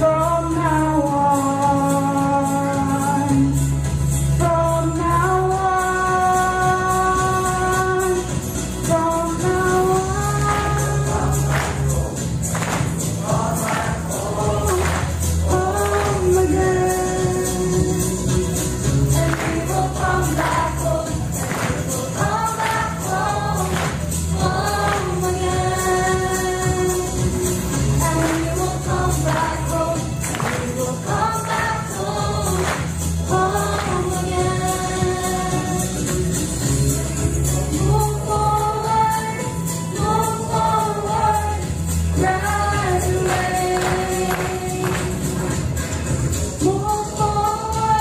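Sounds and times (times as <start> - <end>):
music with bass and beat: 0.0 - 48.0
group singing in unison: 4.4 - 46.0
choir singing: 13.0 - 17.0, 19.1 - 27.1, 28.0 - 35.9.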